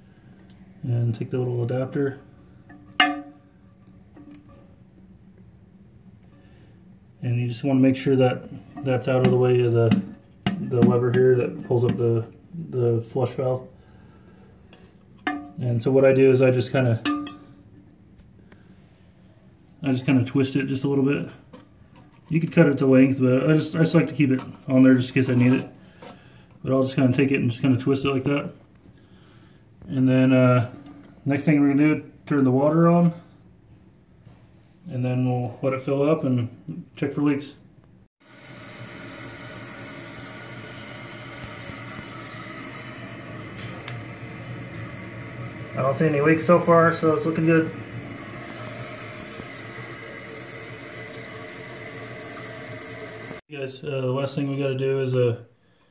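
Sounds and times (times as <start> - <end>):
water rushing into toilet tank: 38.2 - 53.4.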